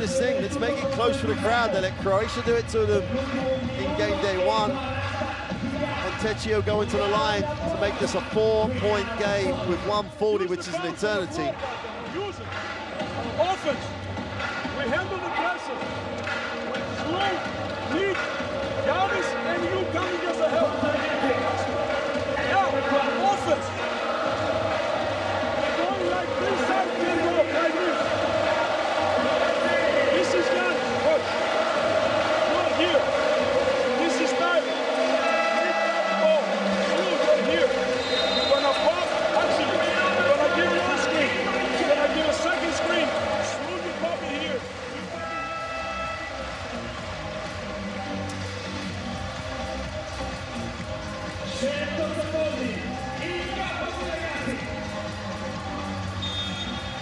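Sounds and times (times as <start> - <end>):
arena music over loudspeakers: 0.0 - 57.0
crowd of voices: 0.0 - 57.0.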